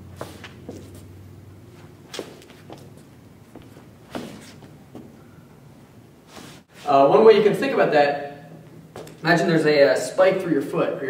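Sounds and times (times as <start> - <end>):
sneakers scuffing on hard floor: 0.1 - 5.2.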